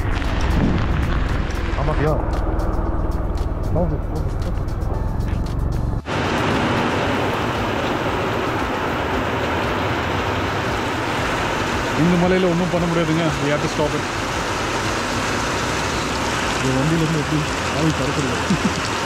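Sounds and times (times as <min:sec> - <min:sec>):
raindrops ticking on microphone: 0:00.0 - 0:02.2, 0:06.0 - 0:19.0
heavy rain: 0:00.0 - 0:04.9, 0:06.0 - 0:19.0
wind buffeting microphone: 0:00.0 - 0:05.0.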